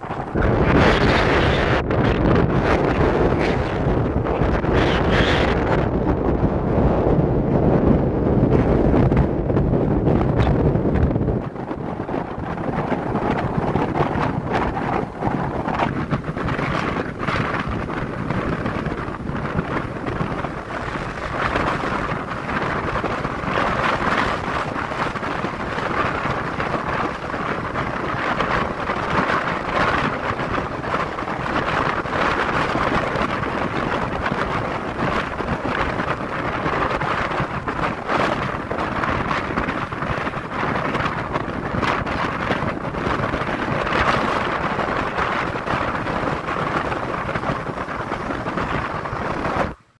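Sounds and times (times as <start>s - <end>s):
car road noise: 0.0s - 6.2s
wind buffeting microphone: 0.0s - 49.9s.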